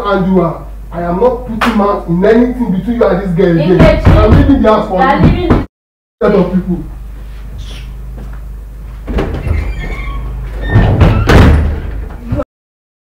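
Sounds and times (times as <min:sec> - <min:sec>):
knock: 0:03.8 - 0:04.6
low hum: 0:06.2 - 0:12.2
door banging shut: 0:09.0 - 0:12.3.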